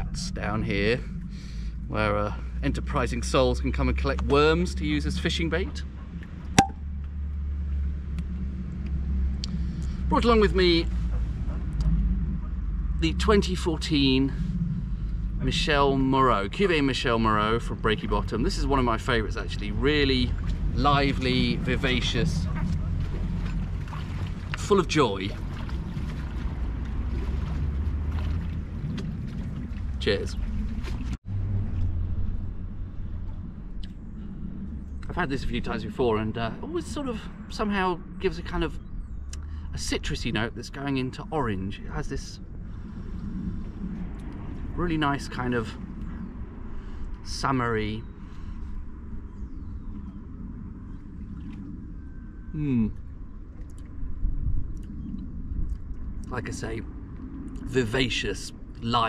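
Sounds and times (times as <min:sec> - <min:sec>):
wind rumbling on microphone: 0:00.0 - 0:59.0.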